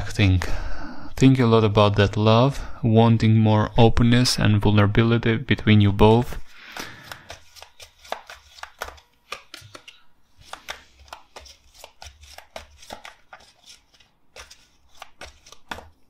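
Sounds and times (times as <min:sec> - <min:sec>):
cards being shuffled: 0:06.6 - 0:16.0.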